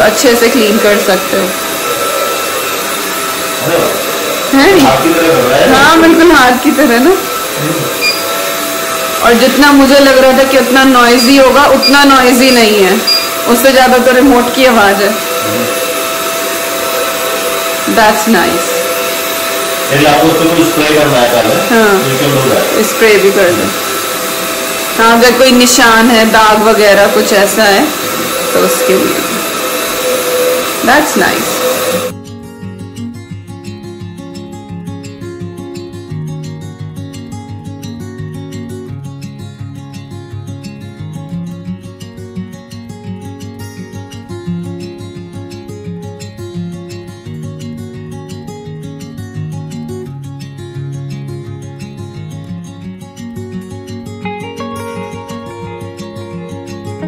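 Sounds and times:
suction fan whirring with whine: 0:00.0 - 0:32.2
acoustic guitar playing: 0:03.1 - 0:57.0.

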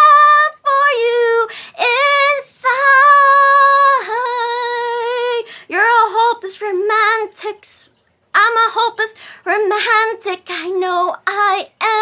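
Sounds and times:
person singing unaccompanied: 0:00.0 - 0:12.0.

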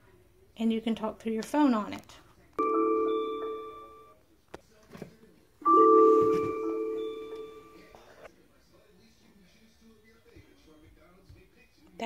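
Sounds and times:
electronic chime tones: 0:02.6 - 0:04.1, 0:05.6 - 0:07.9.

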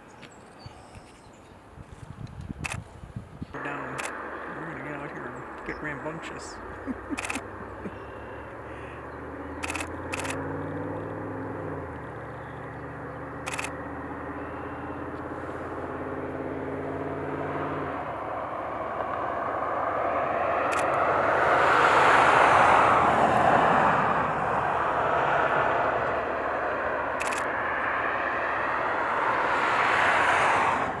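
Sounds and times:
road traffic hum: 0:00.0 - 0:31.0
camera shutter clicks: 0:02.6 - 0:02.8, 0:03.9 - 0:04.2, 0:07.2 - 0:07.5, 0:09.6 - 0:10.4, 0:13.4 - 0:13.8, 0:20.7 - 0:21.0, 0:27.2 - 0:27.5
vehicle passing: 0:03.5 - 0:31.0.

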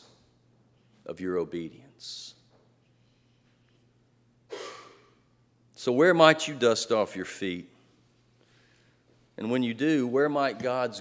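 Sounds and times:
man speaking: 0:01.0 - 0:02.4, 0:05.8 - 0:07.8, 0:09.4 - 0:11.0.

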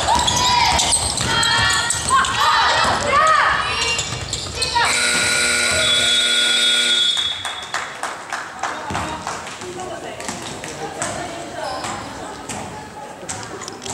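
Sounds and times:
basketball dribbling: 0:00.0 - 0:06.1
players' voices: 0:00.0 - 0:07.0, 0:08.7 - 0:13.9
sneaker squeaks on hardwood floor: 0:00.0 - 0:07.4
electronic buzzer horn: 0:04.9 - 0:07.3.

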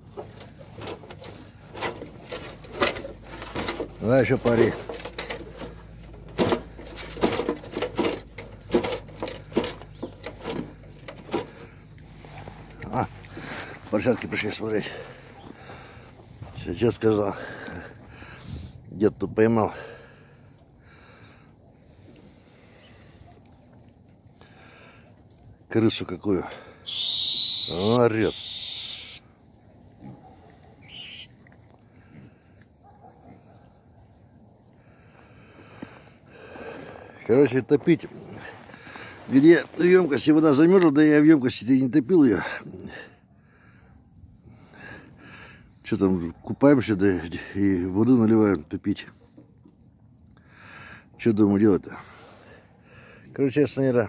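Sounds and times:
rat squealing: 0:26.9 - 0:29.2, 0:30.8 - 0:31.3.

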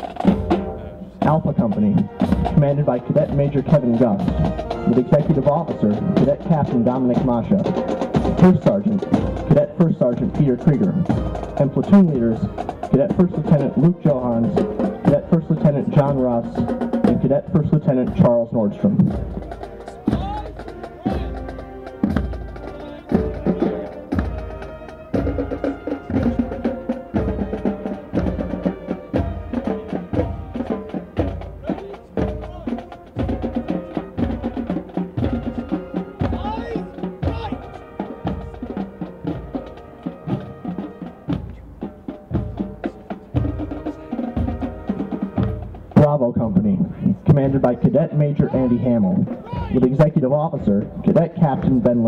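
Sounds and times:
bass drum beat: 0:00.0 - 0:52.0
military band playing march: 0:00.0 - 0:52.0.

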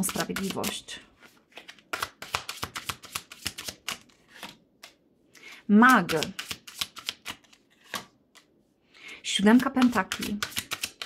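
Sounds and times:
cards snapping and sliding: 0:01.5 - 0:05.0, 0:05.9 - 0:08.5, 0:09.8 - 0:11.0.

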